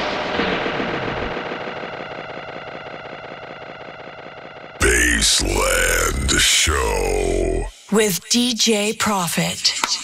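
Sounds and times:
loud voice: 0:04.8 - 0:08.1.

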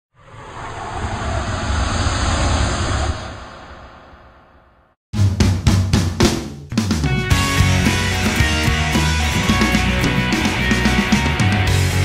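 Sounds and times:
whoosh sound effect: 0:00.1 - 0:05.0.

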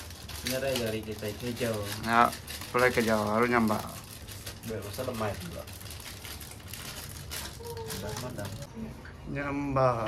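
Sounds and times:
dry vegetable skins crackling: 0:00.0 - 0:08.8.

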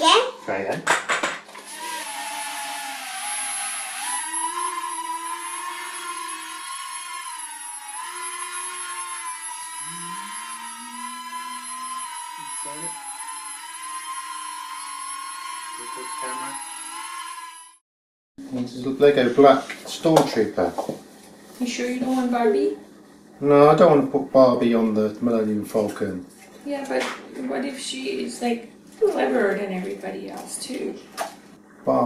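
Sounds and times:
toy quadcopter rotors whining: 0:01.6 - 0:17.8.

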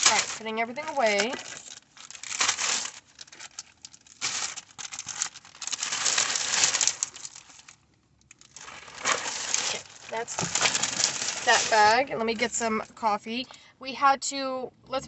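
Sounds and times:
plastic bag rustling: 0:00.0 - 0:13.5.

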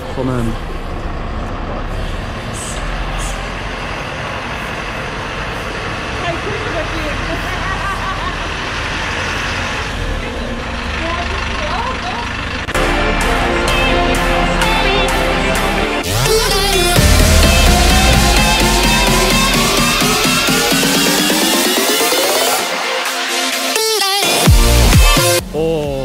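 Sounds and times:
diesel coach engine rumbling: 0:00.0 - 0:26.0.

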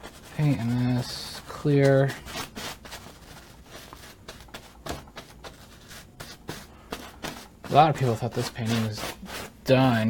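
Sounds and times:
paintbrush strokes on canvas: 0:00.0 - 0:10.0.

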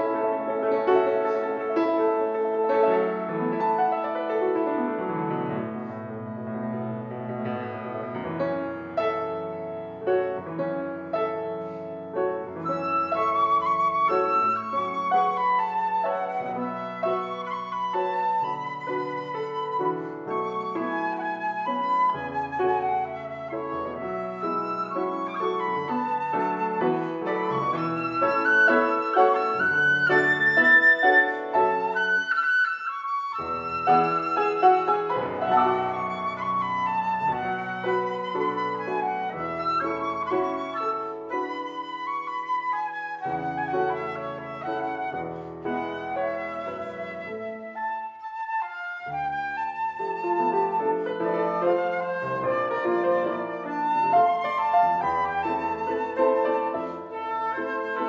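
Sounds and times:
concert flute: 0:00.0 - 0:58.0
grand piano: 0:00.0 - 0:58.0.

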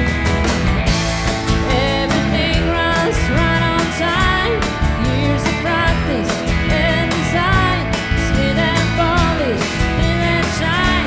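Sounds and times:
live country-rock band playing: 0:00.0 - 0:11.0
woman singing: 0:01.5 - 0:11.0.

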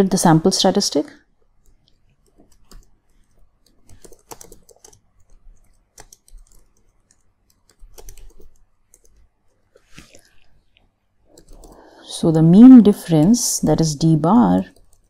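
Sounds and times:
computer keyboard typing: 0:01.4 - 0:09.7, 0:11.3 - 0:11.9, 0:14.4 - 0:15.0.

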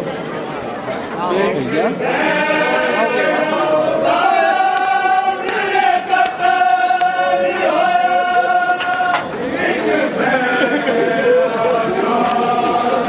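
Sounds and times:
crowd chanting a lament: 0:01.8 - 0:13.0.

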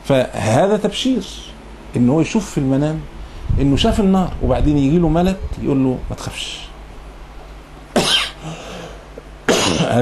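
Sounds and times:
man speaking: 0:00.1 - 0:06.8
man coughing: 0:08.0 - 0:08.9, 0:09.5 - 0:10.0.

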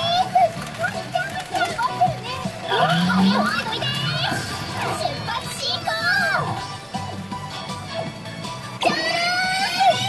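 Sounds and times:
high childlike voice samples: 0:00.0 - 0:06.6
machine music: 0:00.6 - 0:09.2.

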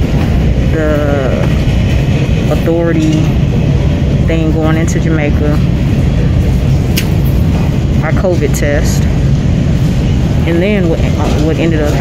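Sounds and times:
terminal background rumble: 0:00.0 - 0:12.0.

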